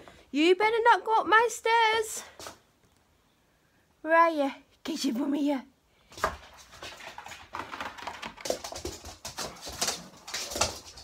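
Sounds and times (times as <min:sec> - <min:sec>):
dog claws tapping and scuffling: 0:06.0 - 0:11.0.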